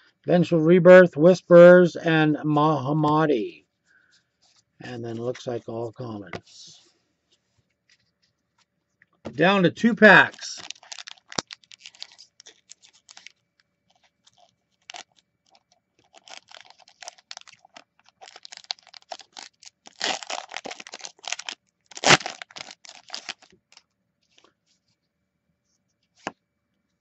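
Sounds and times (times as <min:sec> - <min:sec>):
foil wrapper tearing and crinkling: 0:10.2 - 0:23.8.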